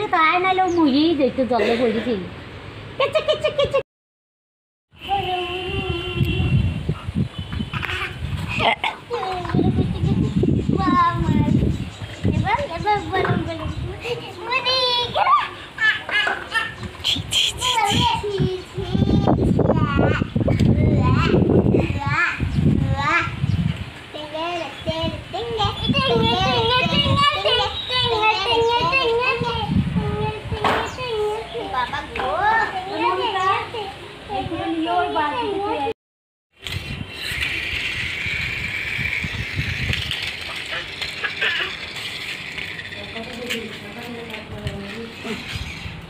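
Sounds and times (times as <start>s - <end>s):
child's sing-song voice: 5.0s - 6.7s, 17.5s - 23.4s, 24.2s - 35.9s
toy car electric motor whirring: 36.6s - 45.8s
plastic wheels and body rattling: 36.6s - 46.0s.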